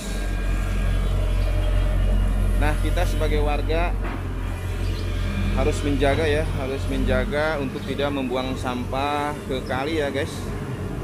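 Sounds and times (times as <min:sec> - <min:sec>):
excavator diesel engine rumbling: 0:00.0 - 0:11.0.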